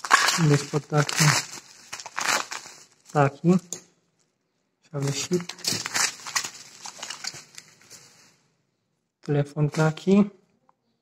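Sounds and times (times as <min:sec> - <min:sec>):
bubble wrap crinkling: 0:00.0 - 0:03.8, 0:05.0 - 0:08.5.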